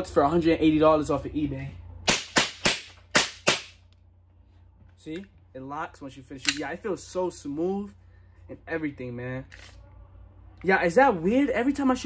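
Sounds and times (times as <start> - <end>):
airsoft pistol sharp cracks: 2.1 - 3.8.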